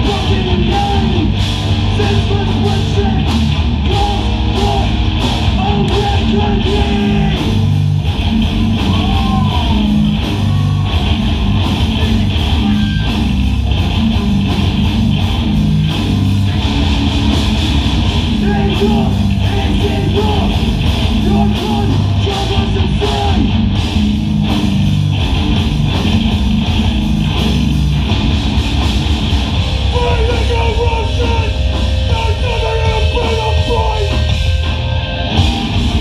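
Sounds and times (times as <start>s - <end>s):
bass guitar: 0.0s - 36.0s
distorted electric guitars: 0.0s - 36.0s
drums: 0.0s - 36.0s.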